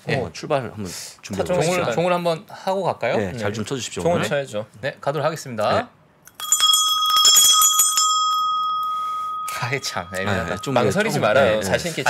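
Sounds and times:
hand bell ringing rapidly: 6.3s - 11.8s.

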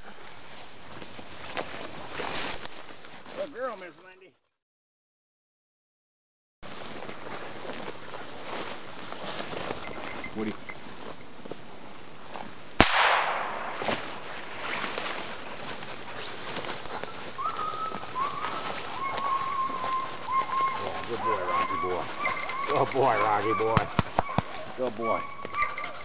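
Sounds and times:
brush rustling: 0.0s - 4.2s, 6.6s - 26.0s
gunshot: 12.8s - 14.1s
dog whining: 17.0s - 26.0s.

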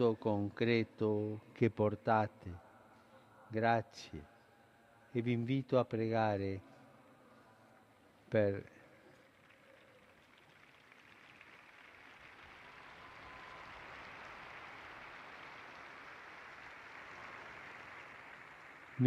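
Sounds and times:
faint crowd applause: 8.7s - 19.0s.

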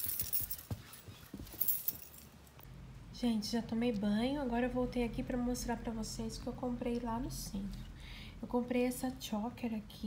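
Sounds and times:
metal keys jingling: 0.0s - 2.6s.

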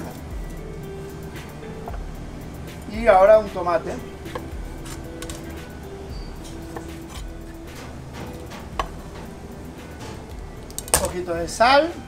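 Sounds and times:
background music: 0.0s - 12.0s
knife tapping on wooden board: 8.6s - 9.0s.

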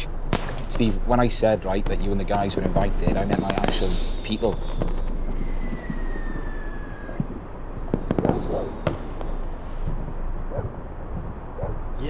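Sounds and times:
firework cracks and pops: 0.3s - 10.0s
whistling firework: 1.8s - 10.9s.

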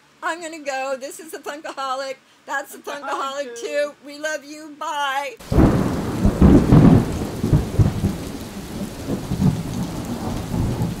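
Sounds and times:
steady rain: 5.4s - 11.0s
thunder rumbles: 5.4s - 11.0s.

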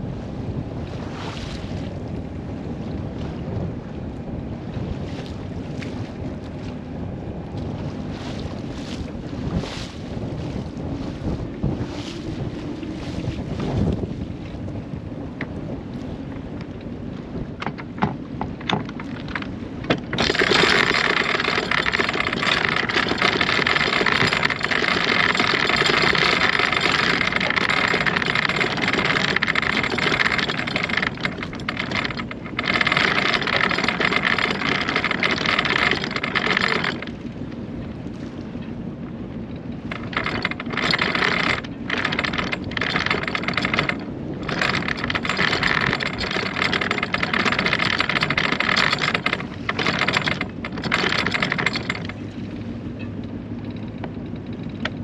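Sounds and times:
wind and water rushing: 0.0s - 55.0s.

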